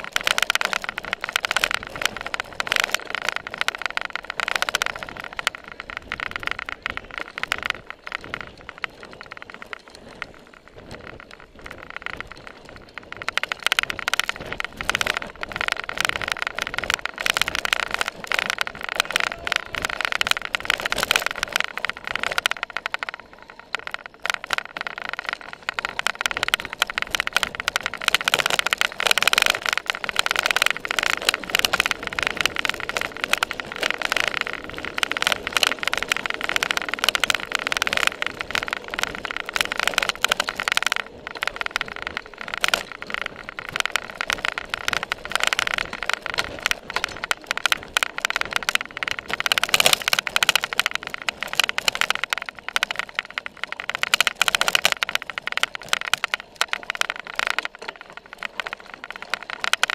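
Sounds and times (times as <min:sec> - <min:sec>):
bike rattling over bumpy ground: 0:00.0 - 0:59.9.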